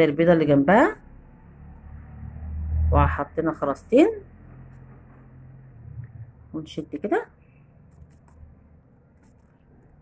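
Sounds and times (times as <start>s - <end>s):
low rumble: 4.2s - 6.6s.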